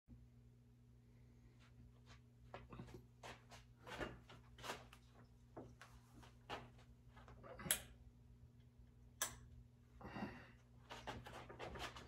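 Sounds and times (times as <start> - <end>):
faint low hum: 0.1 - 12.0.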